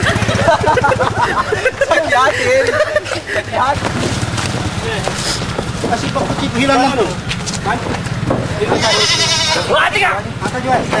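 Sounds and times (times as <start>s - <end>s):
people's voices: 1.0s - 11.0s
goats bleating: 8.6s - 10.0s.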